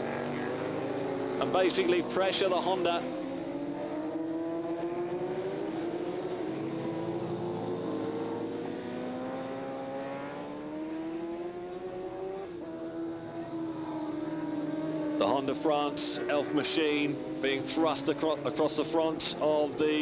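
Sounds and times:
racing motorcycle engines revving: 0.0 - 20.0.

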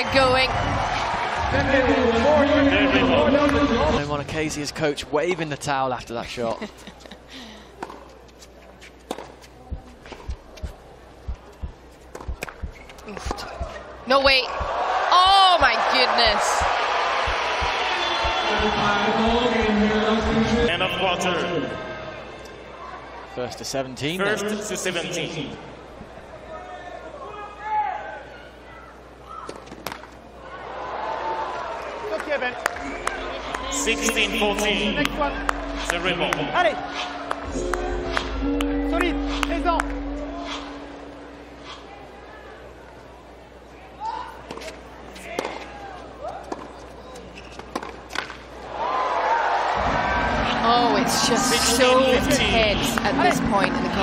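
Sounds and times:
crowd noise: 0.0 - 54.0
racket hitting tennis ball: 9.0 - 10.8, 11.6 - 13.8, 47.6 - 48.4
soft low thuds: 9.7 - 13.9, 16.5 - 20.4
background murmur: 25.6 - 48.7.

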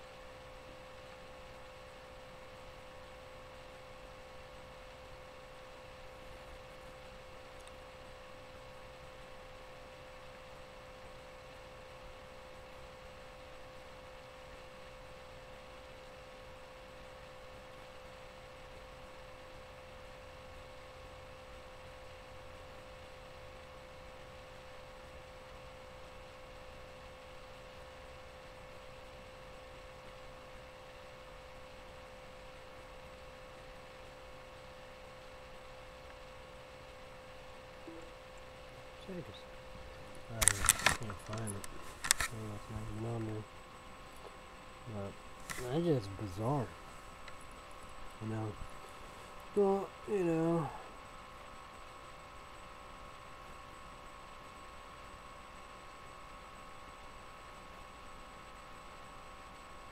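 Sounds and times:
faint electrical hum: 0.0 - 59.9
low hiss: 37.0 - 50.9.

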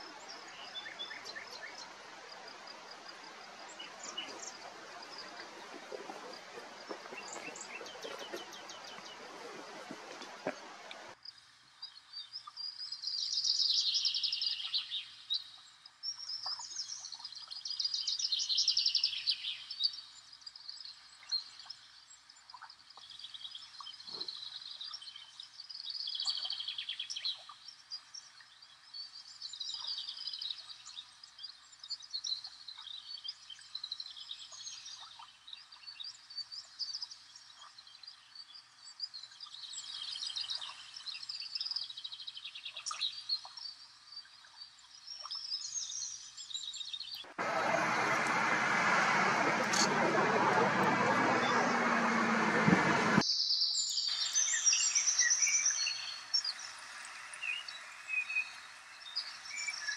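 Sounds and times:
songbirds trilling: 0.0 - 11.2, 47.2 - 53.2.

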